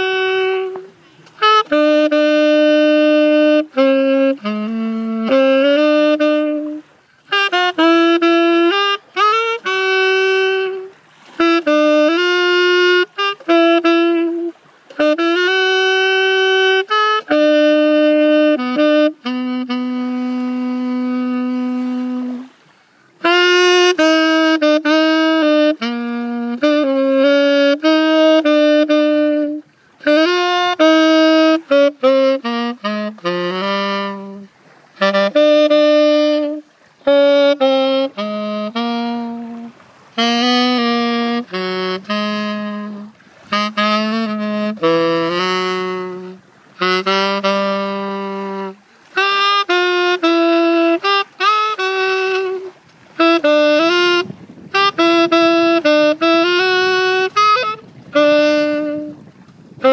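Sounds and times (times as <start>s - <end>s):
solo saxophone melody: 0.0s - 59.9s.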